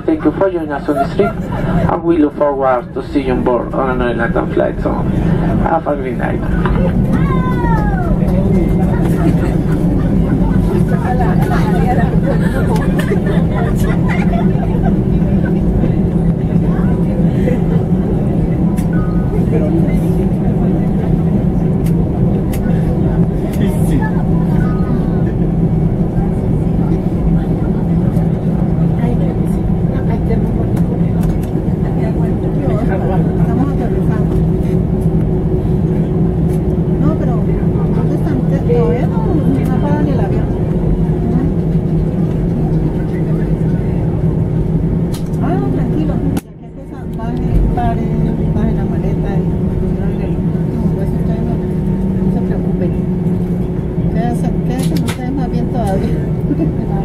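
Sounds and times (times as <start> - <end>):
aircraft cabin drone: 0.0 - 57.0
passengers murmuring: 0.0 - 57.0.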